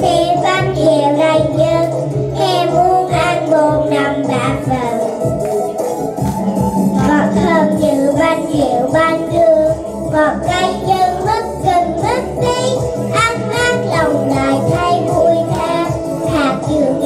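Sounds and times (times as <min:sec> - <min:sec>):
girls singing into microphones: 0:00.0 - 0:17.0
instrumental music with steady beat: 0:00.0 - 0:17.0.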